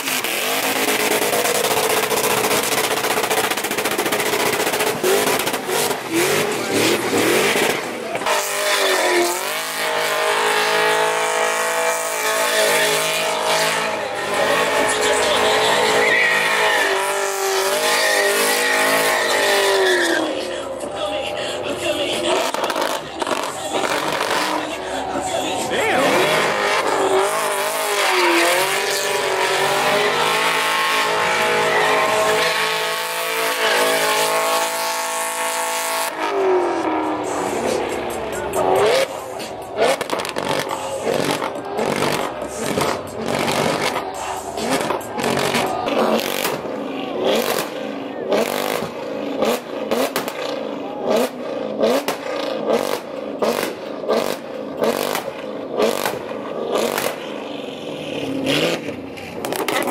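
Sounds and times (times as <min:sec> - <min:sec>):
car engine revving: 0:00.0 - 0:59.9
tyres squealing: 0:12.2 - 0:20.6.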